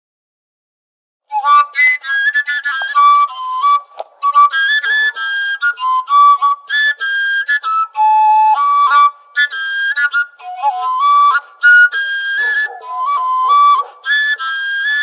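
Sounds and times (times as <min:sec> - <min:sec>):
overtone flute folk melody: 0:01.3 - 0:15.0.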